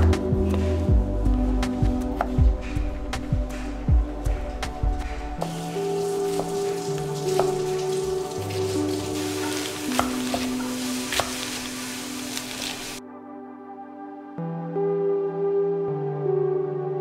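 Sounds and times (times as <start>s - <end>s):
soft background music: 0.0s - 17.0s
food sizzling in frying pan: 5.4s - 13.0s.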